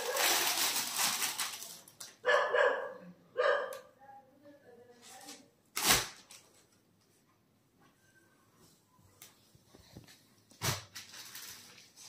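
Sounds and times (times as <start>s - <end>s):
cloth and plastic rustling: 0.0s - 2.2s, 4.9s - 7.3s, 8.6s - 12.0s
dog barking: 2.2s - 3.9s.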